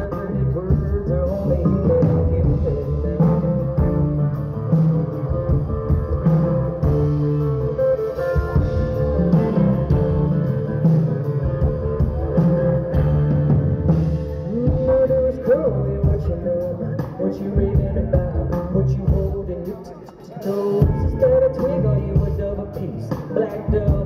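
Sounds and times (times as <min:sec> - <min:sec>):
bass and drums: 0:00.0 - 0:24.0.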